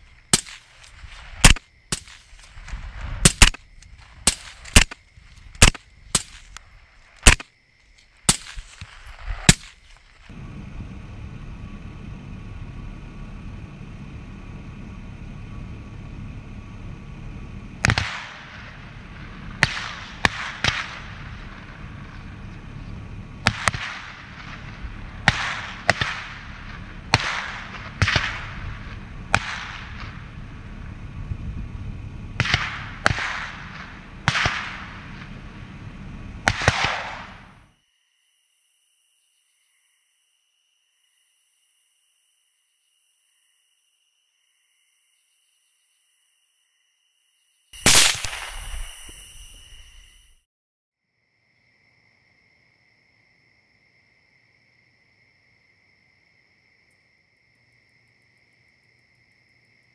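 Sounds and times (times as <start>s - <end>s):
rifle shots echoing: 0.0s - 7.5s, 8.3s - 10.0s, 17.8s - 22.3s, 23.4s - 30.6s, 32.3s - 35.6s, 36.4s - 37.6s, 47.8s - 49.2s
steady low hum: 0.0s - 37.7s.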